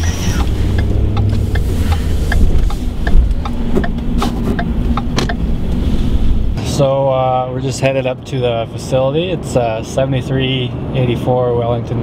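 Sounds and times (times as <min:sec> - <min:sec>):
road and engine rumble: 0:00.0 - 0:12.0
short knocks and clicks: 0:00.4 - 0:05.5.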